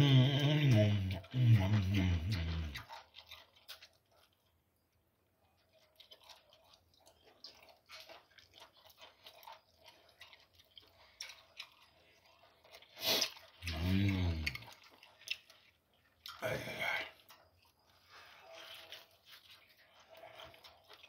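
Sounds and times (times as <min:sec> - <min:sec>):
person humming: 0:00.0 - 0:02.8, 0:13.6 - 0:14.5
chewing meat off the bone: 0:00.0 - 0:21.0.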